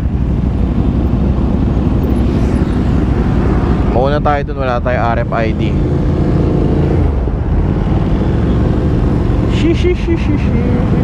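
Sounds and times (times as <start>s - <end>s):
motorcycle engine low rumble: 0.0s - 11.0s.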